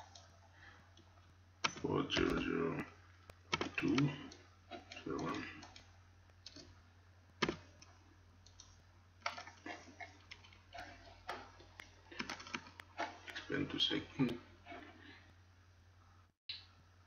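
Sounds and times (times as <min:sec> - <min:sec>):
computer mouse clicks: 0:00.0 - 0:00.4, 0:01.0 - 0:02.4, 0:03.5 - 0:06.8, 0:07.4 - 0:13.5
low electrical hum: 0:00.0 - 0:17.0.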